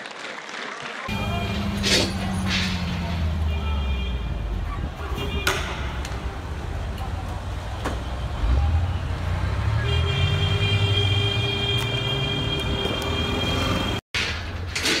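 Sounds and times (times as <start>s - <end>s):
street noise: 0.0s - 15.0s
heavy vehicle engine revving: 1.1s - 3.5s, 5.9s - 11.0s.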